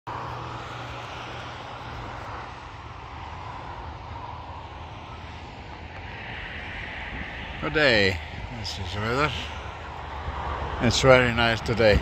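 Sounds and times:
low hum: 0.1 - 10.8
distant engine drone: 0.1 - 12.0.

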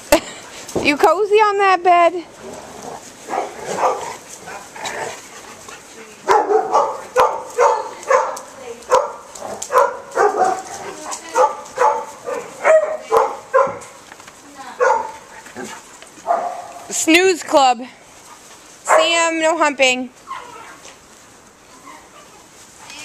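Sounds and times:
dog barking sharply: 6.3 - 10.6, 11.4 - 13.8.

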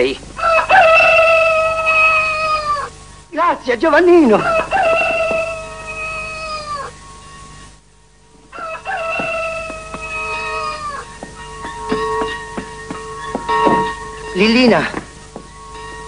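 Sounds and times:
rooster crowing: 0.4 - 3.0, 4.2 - 7.5, 8.5 - 14.3.

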